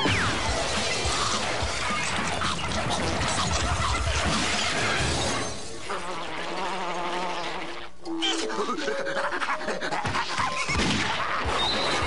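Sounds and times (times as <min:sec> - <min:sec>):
cartoon background music: 0:00.0 - 0:05.7, 0:08.0 - 0:12.0
wordless vocal noises: 0:08.1 - 0:11.4
cartoon sound effects: 0:08.1 - 0:12.0.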